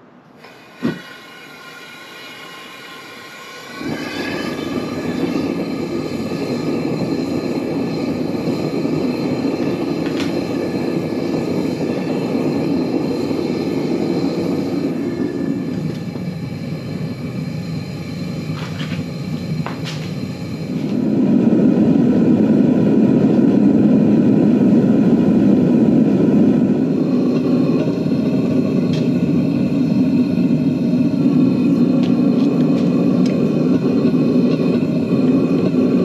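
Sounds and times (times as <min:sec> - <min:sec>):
gas burner roaring: 0:00.0 - 0:36.0.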